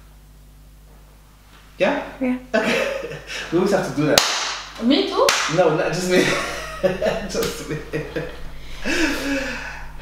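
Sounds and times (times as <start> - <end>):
woman laughing breathily: 8.5 - 10.0.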